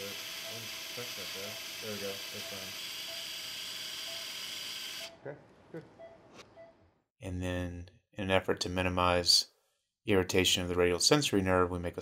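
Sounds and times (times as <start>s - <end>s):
surgical wire driver whirring: 0.0s - 5.1s.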